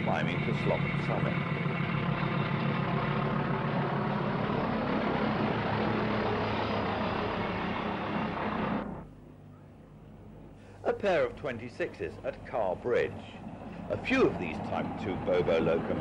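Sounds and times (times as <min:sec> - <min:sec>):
diesel locomotive engine drone: 0:00.0 - 0:16.0
faint low hum: 0:00.0 - 0:16.0.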